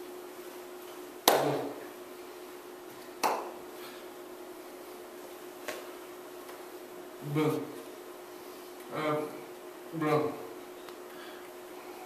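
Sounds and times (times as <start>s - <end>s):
electrical hum: 0.0s - 12.0s
hands slapping together: 1.2s - 1.7s, 3.2s - 3.5s.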